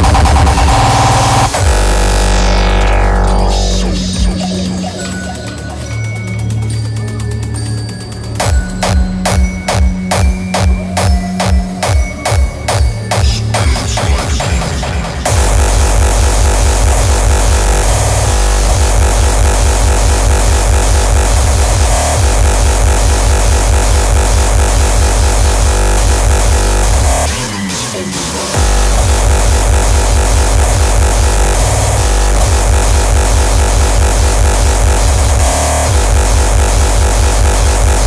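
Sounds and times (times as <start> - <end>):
distorted kick drums: 0.0 - 4.9, 8.4 - 27.5, 28.5 - 38.0
distorted hardcore electronic music: 0.0 - 38.0.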